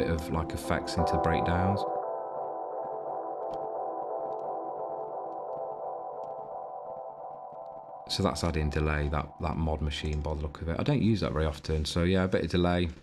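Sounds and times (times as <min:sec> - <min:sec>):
filtered synth chord with delay: 0:00.0 - 0:10.0.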